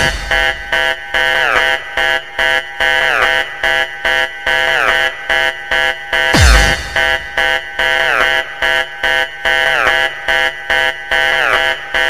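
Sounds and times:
harsh synth lead stabs: 0.0 - 1.0, 6.2 - 8.5.

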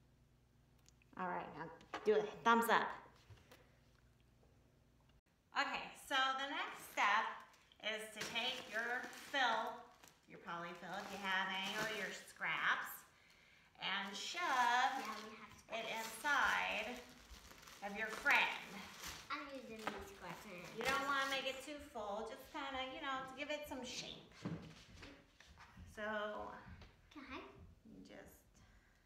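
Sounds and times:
people talking: 5.6 - 13.1, 13.8 - 17.1, 17.8 - 24.4, 25.8 - 28.5.

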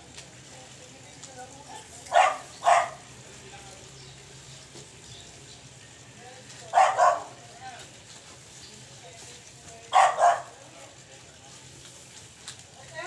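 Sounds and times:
dog barking: 2.1 - 3.0, 6.7 - 7.4, 9.9 - 10.6.

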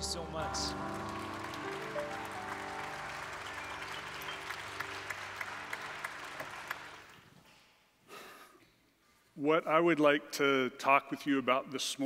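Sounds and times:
soft music of sustained chords: 0.0 - 6.9
audience applauding: 0.0 - 7.4.

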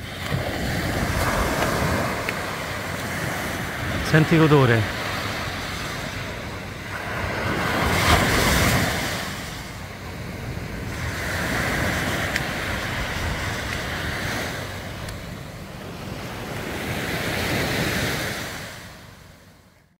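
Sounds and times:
small waves breaking on a beach: 0.0 - 20.0.

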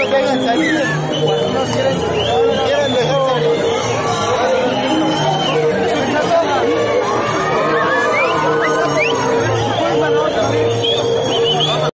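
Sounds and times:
crowd chatter: 0.0 - 11.9
music playing: 0.0 - 11.9.

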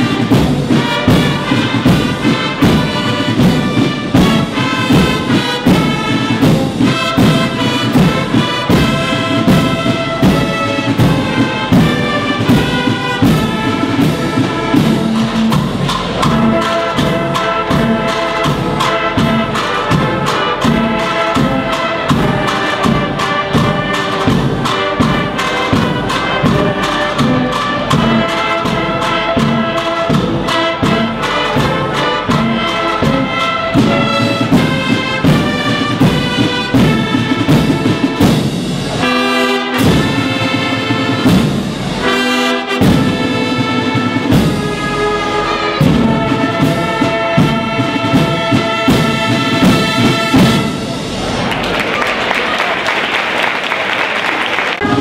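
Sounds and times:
trumpets playing melody: 0.0 - 51.5, 54.7 - 55.0
steady drum beat: 0.0 - 51.7
brass band playing a march: 0.0 - 55.0.

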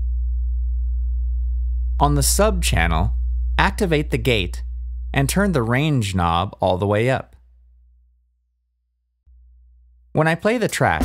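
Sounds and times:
low sine-wave tone: 0.0 - 6.4.

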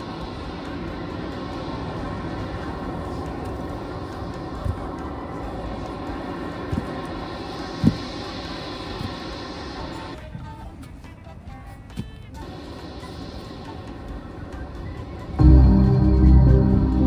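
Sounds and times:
faint sustained tones: 0.0 - 10.2, 12.4 - 17.0
low rumbling drone: 0.0 - 10.2, 15.2 - 17.0.

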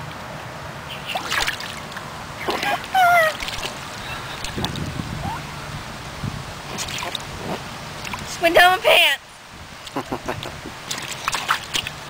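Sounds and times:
water sloshing in a pool: 0.9 - 12.0
high-pitched falling voice: 5.2 - 5.5.

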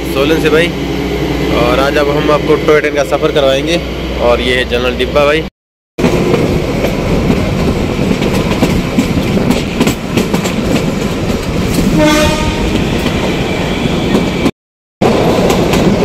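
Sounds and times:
train rumble: 0.0 - 16.0.

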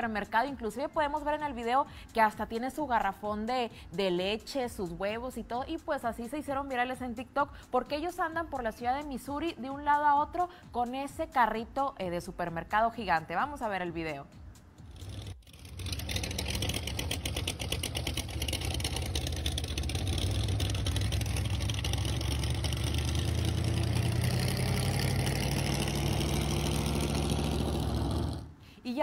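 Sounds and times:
car engine running: 14.8 - 28.6.

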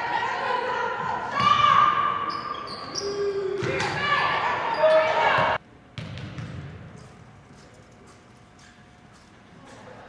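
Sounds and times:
basketball bouncing on court: 5.3 - 7.0.

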